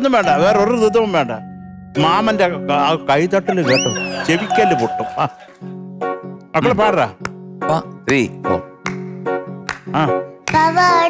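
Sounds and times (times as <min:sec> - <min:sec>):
light background music: 0:00.0 - 0:11.0
doorbell-like chime: 0:04.4 - 0:05.6.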